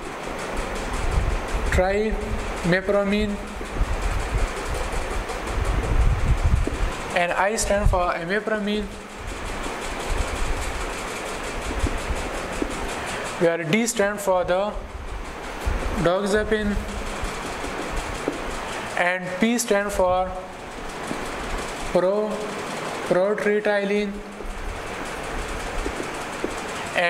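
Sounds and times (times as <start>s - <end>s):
marker writing on whiteboard: 2.1s - 6.0s, 6.6s - 21.8s, 24.0s - 27.0s
marker squeaking on whiteboard: 15.9s - 19.0s, 24.4s - 27.0s.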